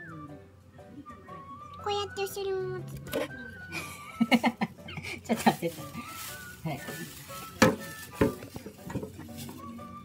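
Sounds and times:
knock on plastic enclosure: 7.6s - 9.1s.

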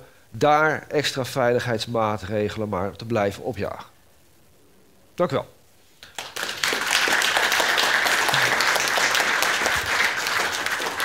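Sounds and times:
audience applause: 6.1s - 11.0s.

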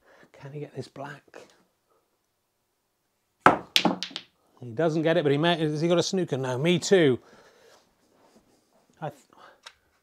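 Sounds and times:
snooker balls clicking: 3.5s - 4.3s.

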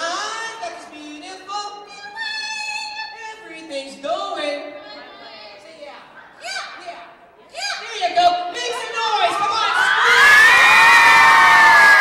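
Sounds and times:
audience cheering and shouting: 8.8s - 12.0s.

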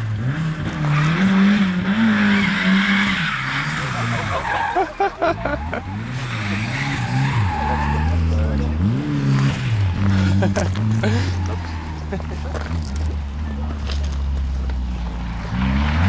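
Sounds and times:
car engine revving: 0.0s - 16.0s
tyres squealing on tarmac: 2.2s - 8.6s, 11.0s - 12.9s.

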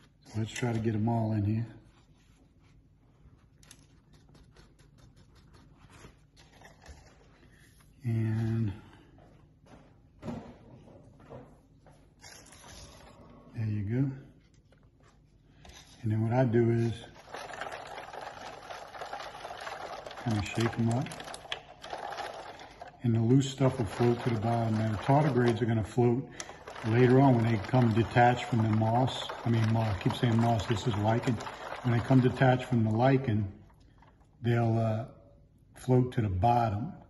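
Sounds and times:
paper towel crinkling and ticking: 16.7s - 34.2s
water sloshing in a plastic cup: 16.9s - 34.2s.

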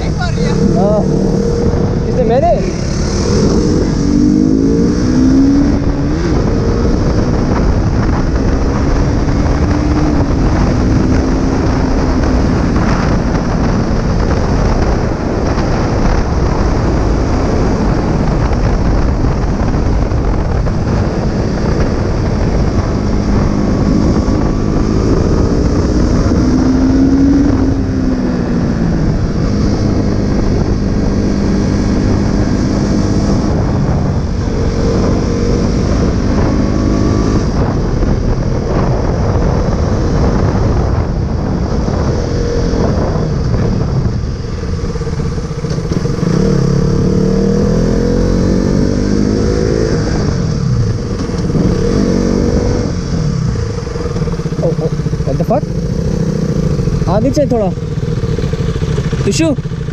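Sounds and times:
motorcycle engine accelerating: 0.0s - 59.9s.

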